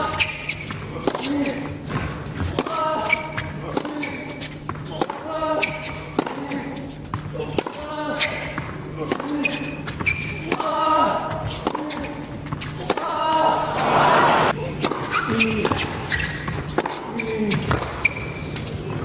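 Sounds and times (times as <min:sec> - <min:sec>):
tennis balls struck with rackets: 0:01.0 - 0:13.5, 0:14.8 - 0:18.1.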